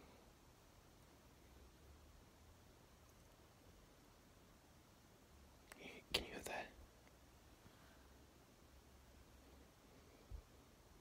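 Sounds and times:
person whispering: 5.7s - 6.8s.

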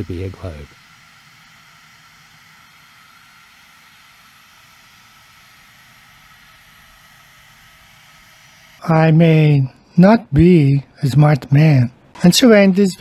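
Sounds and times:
thin high whine tones: 0.0s - 9.0s.

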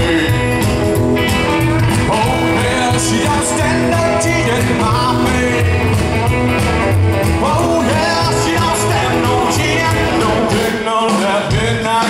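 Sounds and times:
person singing: 0.0s - 0.8s, 1.4s - 12.0s
double bass: 0.0s - 10.8s
drums: 0.0s - 12.0s
electric guitars: 0.0s - 12.0s.

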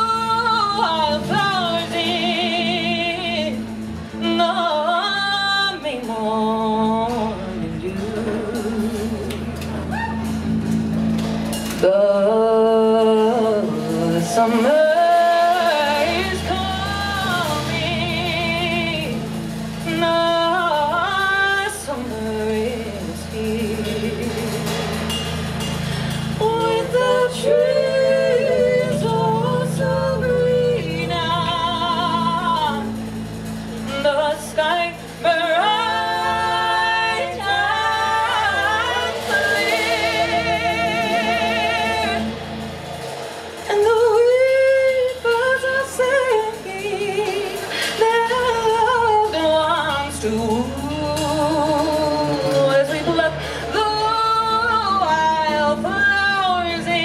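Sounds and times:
woman singing into a microphone: 0.0s - 10.6s, 11.7s - 25.2s, 26.3s - 33.2s, 33.8s - 42.7s, 43.6s - 57.0s
steady low drone: 0.0s - 57.0s.

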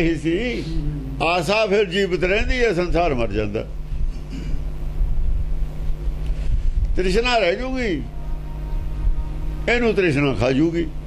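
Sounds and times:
steady low hum: 0.0s - 11.0s
wind noise on microphone: 4.9s - 9.9s.

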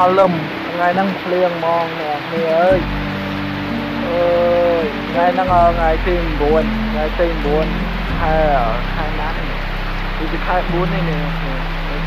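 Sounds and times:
background music with low drone: 0.0s - 12.0s
voice holding long vowel: 3.6s - 12.0s.

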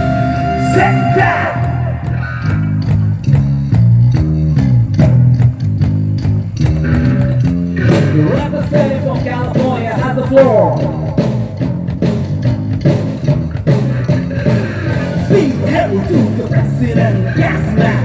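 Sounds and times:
bass guitar: 0.0s - 18.0s
electric guitars: 0.0s - 18.0s.

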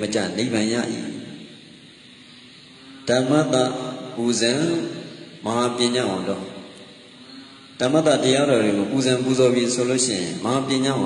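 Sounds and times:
man preaching through microphone: 0.0s - 1.4s, 3.0s - 6.7s, 7.8s - 11.0s.

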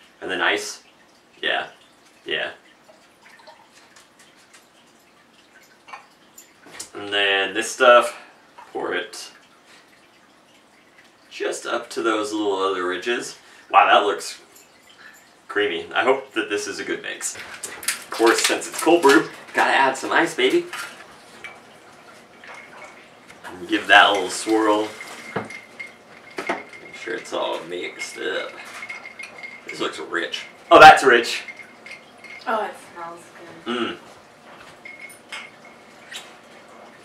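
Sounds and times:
liquid trickling into a glass: 0.0s - 32.8s, 33.7s - 37.0s.

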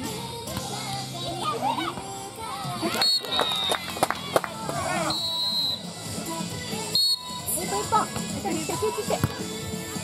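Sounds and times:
background music: 0.0s - 10.0s
girls calling and shouting: 0.6s - 5.1s.

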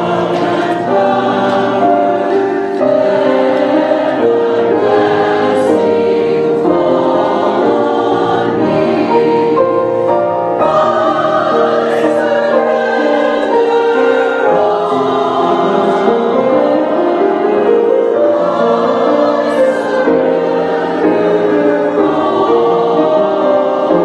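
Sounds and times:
church choir singing: 0.0s - 24.0s.

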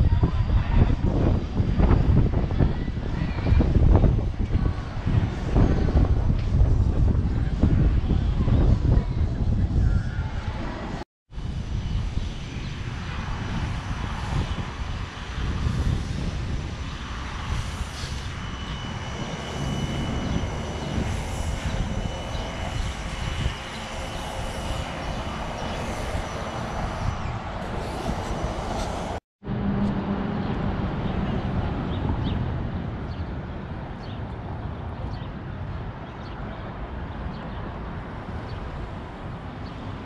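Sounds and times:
city street rumble: 0.0s - 40.0s
faint high whine: 11.4s - 29.2s.

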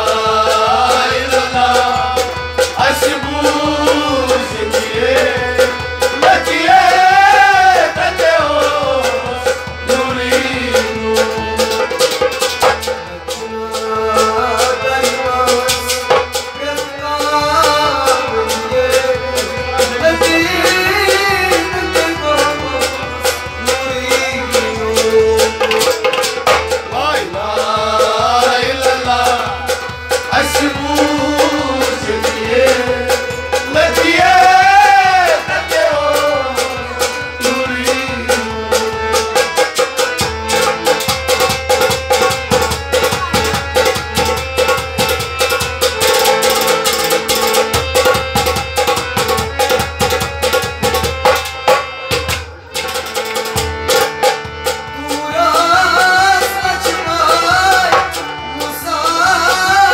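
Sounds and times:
man singing folk song: 0.0s - 11.8s, 13.2s - 26.0s, 26.9s - 39.2s, 55.0s - 59.9s
hand drum rhythm: 0.0s - 59.9s
harmonium: 0.0s - 59.9s.

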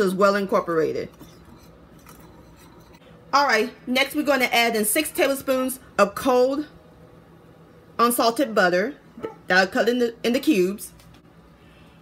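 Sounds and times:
metal whisk mixing in bowl: 1.1s - 3.0s.

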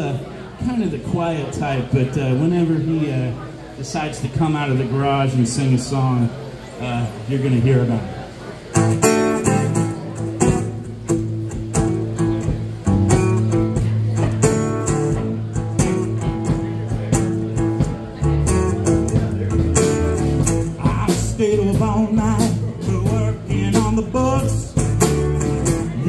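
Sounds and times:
strummed acoustic guitar: 8.3s - 26.0s
bass guitar: 8.7s - 26.0s
steady drum beat: 8.8s - 26.0s.

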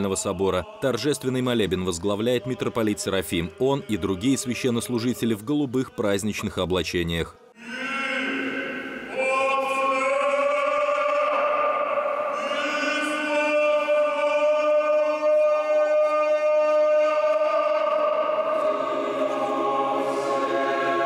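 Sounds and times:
voices singing chant: 0.0s - 5.4s, 7.6s - 21.0s.

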